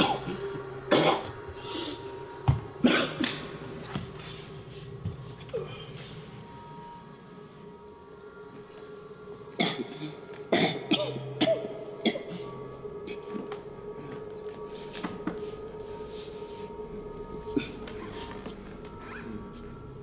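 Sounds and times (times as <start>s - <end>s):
man coughing and gasping: 0.0s - 1.4s, 2.8s - 3.4s, 9.6s - 12.5s
low musical drone: 0.0s - 20.0s.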